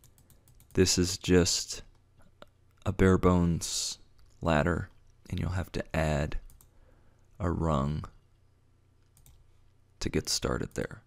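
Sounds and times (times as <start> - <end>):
computer mouse clicks: 0.0 - 0.8, 6.4 - 6.7, 9.0 - 9.4.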